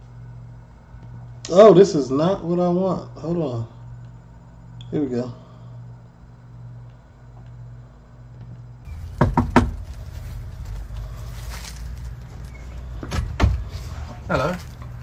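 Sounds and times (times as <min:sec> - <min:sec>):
steady low hum: 0:00.0 - 0:15.0
knocking on a door: 0:09.0 - 0:09.9.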